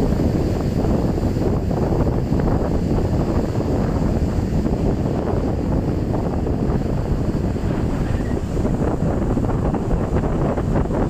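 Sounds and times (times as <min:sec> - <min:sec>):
surf breaking on beach: 0:00.0 - 0:11.0
wind buffeting microphone: 0:00.0 - 0:11.0.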